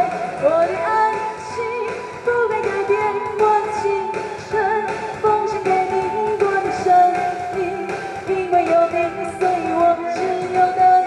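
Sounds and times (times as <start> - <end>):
pop backing track: 0.0 - 11.0
woman singing into a microphone: 0.0 - 11.0.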